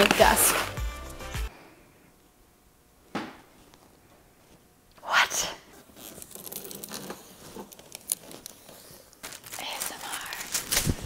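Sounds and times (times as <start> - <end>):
plastic film peeling crinkles: 0.0 - 0.8, 5.8 - 11.0.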